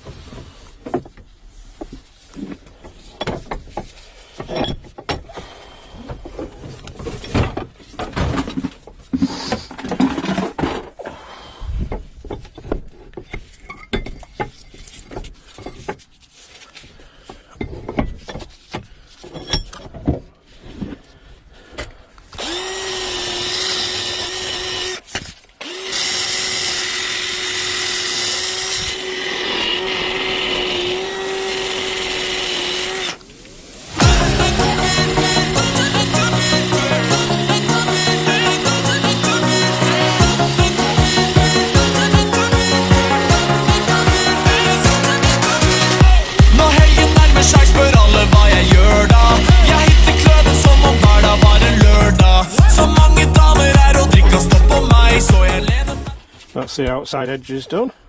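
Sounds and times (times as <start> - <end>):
metal tools knocking and scraping: 2.9 - 5.3, 12.3 - 16.1, 17.5 - 20.2
cordless drill running: 22.3 - 33.2, 37.6 - 52.4.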